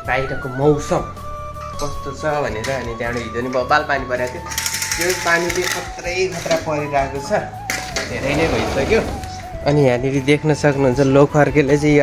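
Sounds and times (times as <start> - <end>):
window blind mechanism clicking: 4.2 - 6.6.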